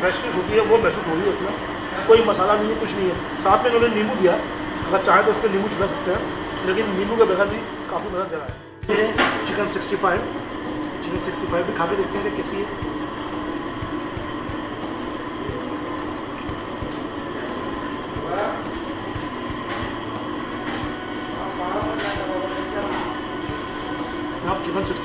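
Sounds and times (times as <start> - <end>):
humming room noise: 0.0 - 25.0.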